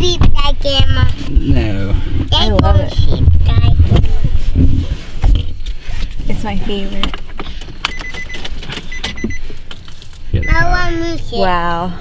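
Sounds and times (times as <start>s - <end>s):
electronic warning chime: 7.9s - 9.5s.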